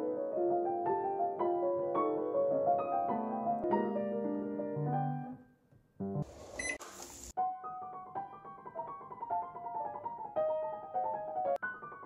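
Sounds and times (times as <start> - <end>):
piano notes: 0.0 - 6.2, 7.4 - 12.0
rice cooker beep: 6.6 - 6.8.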